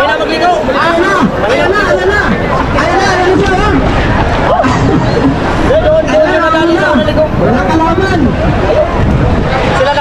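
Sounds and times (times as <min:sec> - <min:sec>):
men calling out and shouting: 0:00.0 - 0:10.0
steady low rumbling: 0:00.4 - 0:10.0.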